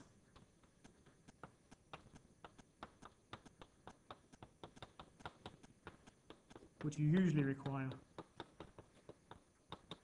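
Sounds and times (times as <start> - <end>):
chalk tapping on blackboard: 0.3 - 10.0.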